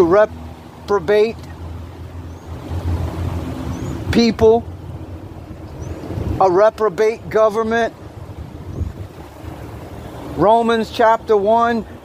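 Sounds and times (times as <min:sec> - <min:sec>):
faint outdoor noise: 0:00.0 - 0:12.0
wind buffeting microphone: 0:01.5 - 0:12.0.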